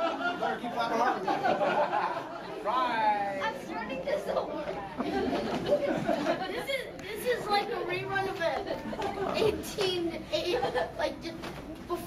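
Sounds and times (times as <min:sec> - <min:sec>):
chatter of overlapping voices: 0:00.0 - 0:12.0.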